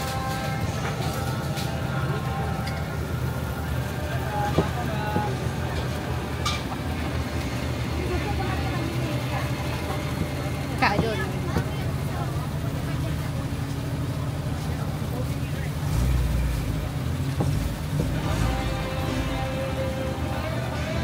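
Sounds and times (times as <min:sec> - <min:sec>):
background voices: 0:00.0 - 0:21.0
low engine hum: 0:00.0 - 0:21.0.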